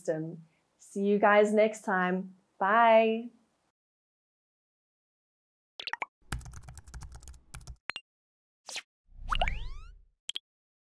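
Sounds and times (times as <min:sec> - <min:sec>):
keyboard typing clicks: 0:06.3 - 0:07.8.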